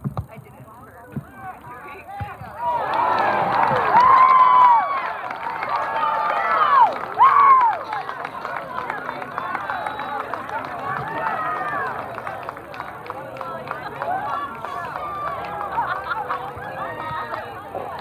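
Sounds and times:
crowd voices chattering: 0.0 - 18.0.

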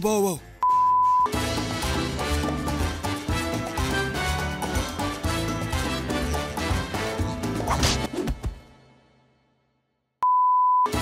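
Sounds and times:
music: 0.0 - 10.0
steady electronic beep: 0.6 - 1.4, 10.2 - 11.0.

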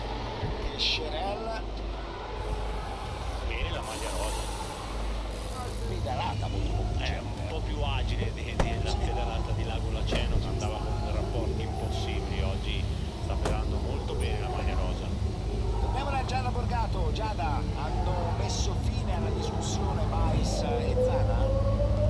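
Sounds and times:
indistinct voices: 0.0 - 22.0
vehicle engines idling: 0.0 - 22.0.

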